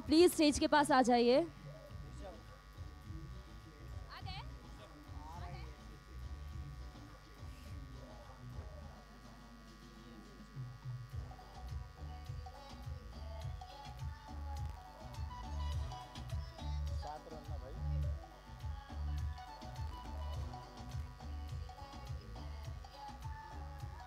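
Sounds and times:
electrical buzz: 0:00.0 - 0:24.0
muffled music with bass thumps: 0:00.0 - 0:24.0.

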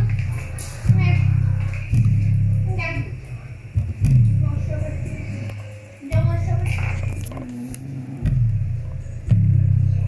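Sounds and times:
bass-heavy music through loudspeaker: 0:00.0 - 0:03.1, 0:03.8 - 0:05.5, 0:06.1 - 0:10.0.

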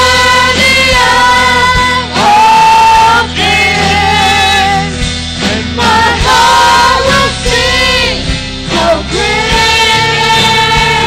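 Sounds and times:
drum beats: 0:00.0 - 0:11.0
worship band playing: 0:00.0 - 0:11.0.

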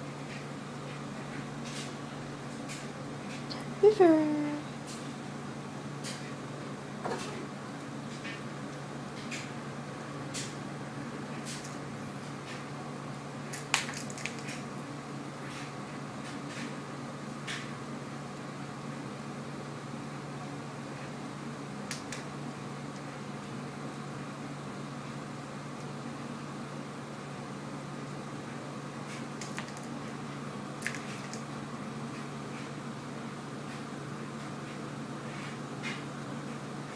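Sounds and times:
low background hum and hiss: 0:00.0 - 0:36.9.

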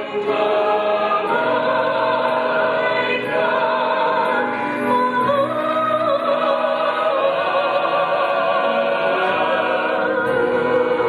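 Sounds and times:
women singing into microphone: 0:00.0 - 0:11.0.

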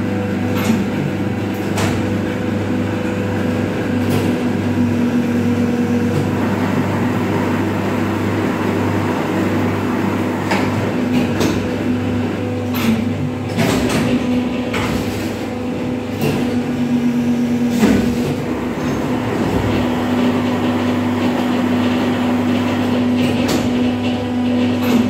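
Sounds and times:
hydraulic pump motor hum: 0:00.0 - 0:25.0.

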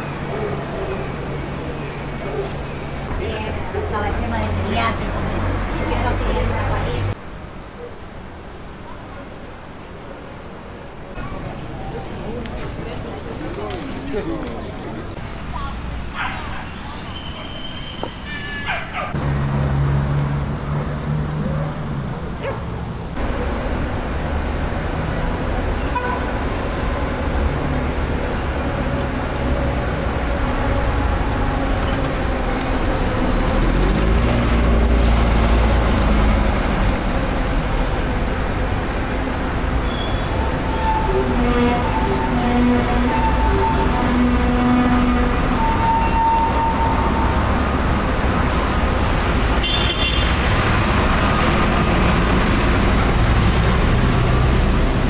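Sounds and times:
cars and bus passing: 0:00.0 - 0:55.0.

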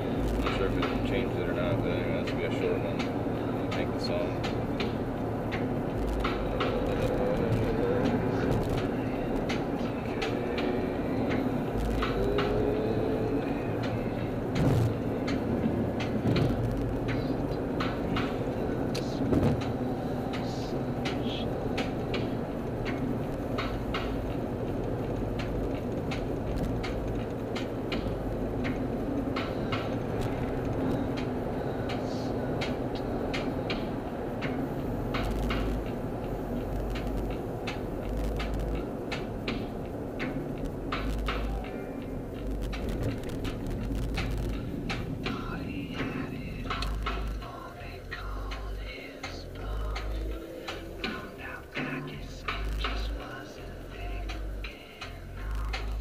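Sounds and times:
road and engine noise in car: 0:00.0 - 0:56.0
thumps: 0:16.1 - 0:17.2, 0:19.0 - 0:19.8.

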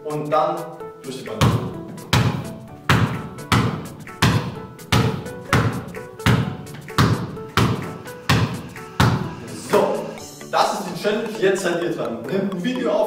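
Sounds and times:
basketball bouncing on hard floor: 0:01.4 - 0:09.4.

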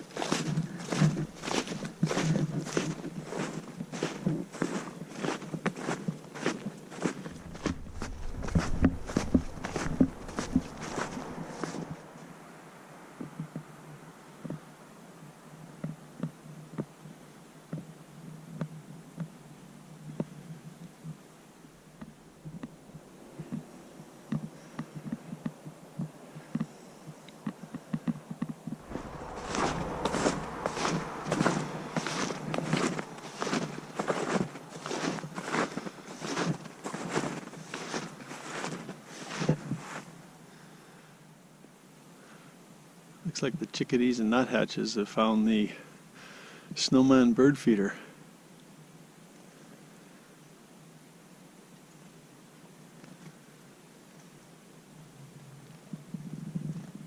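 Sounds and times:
snowshoe footsteps in snow: 0:00.0 - 0:12.0, 0:28.8 - 0:40.1.

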